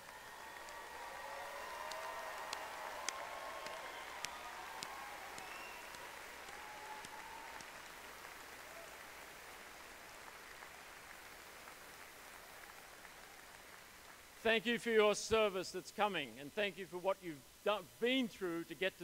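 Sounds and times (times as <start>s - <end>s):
audience applauding in a hall: 0.0s - 14.4s.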